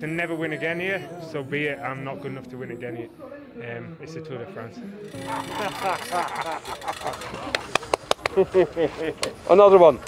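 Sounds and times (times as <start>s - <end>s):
excited voices talking: 5.1s - 7.9s.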